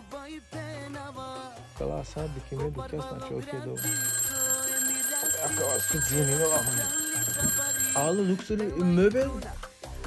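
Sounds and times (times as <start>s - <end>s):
phone ringing tone: 3.8s - 9.0s.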